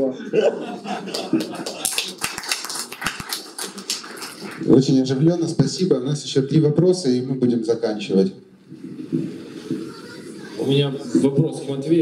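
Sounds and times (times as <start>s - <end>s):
audience laughing: 0.0s - 2.2s
scattered clapping: 1.0s - 4.8s.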